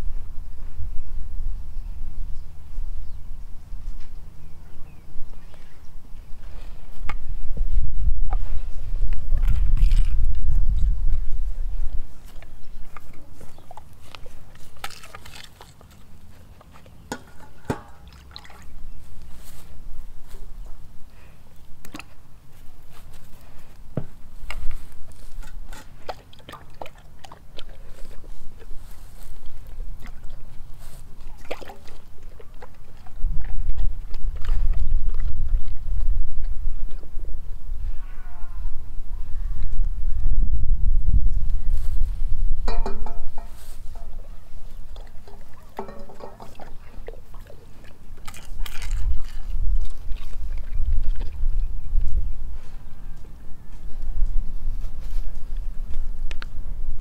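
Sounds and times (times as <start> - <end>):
dog mouth clicks and noises: 9.1 - 18.4, 21.8 - 22.2, 24.4 - 30.6, 31.2 - 37.2, 44.9 - 52.2, 55.9 - 56.6.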